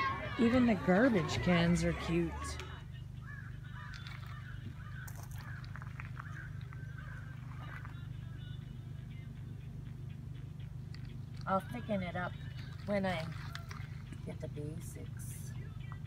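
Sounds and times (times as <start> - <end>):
birds calling: 0.0 - 16.0
steady low hum: 0.0 - 16.0.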